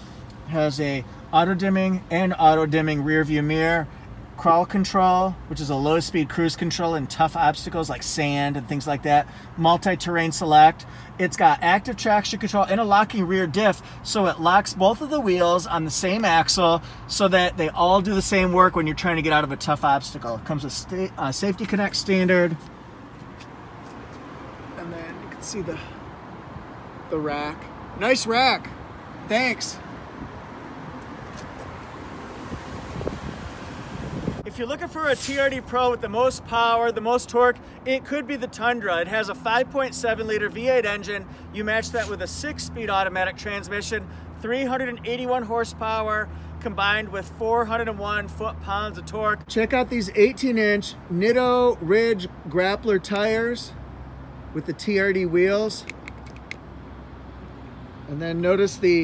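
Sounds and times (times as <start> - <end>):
faint clicks: 55.8 - 56.6.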